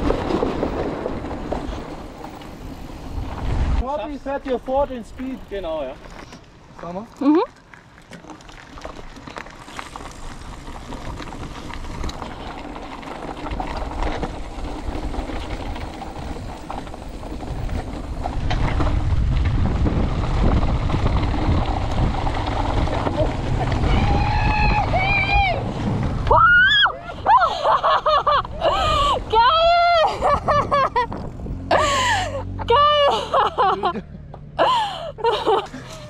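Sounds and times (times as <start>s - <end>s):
wind rushing over microphone: 0.0s - 4.2s, 10.2s - 27.5s, 28.2s - 31.9s
bike tyre noise and rattle: 0.0s - 36.0s.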